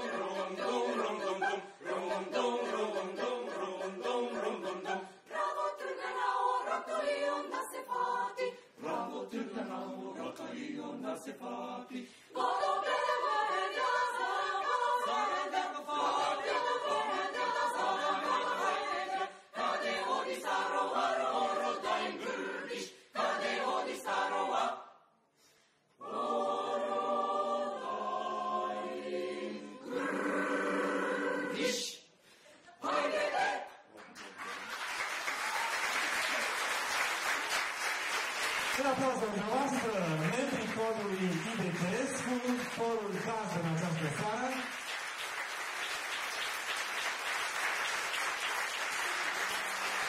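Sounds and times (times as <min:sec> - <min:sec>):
mixed choir singing a cappella: 0:00.0 - 0:34.0.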